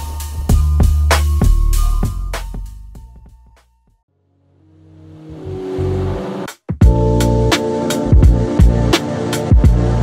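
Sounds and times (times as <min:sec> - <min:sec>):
soundtrack riser: 0:04.2 - 0:07.6
sustained low bass tone: 0:04.4 - 0:08.9.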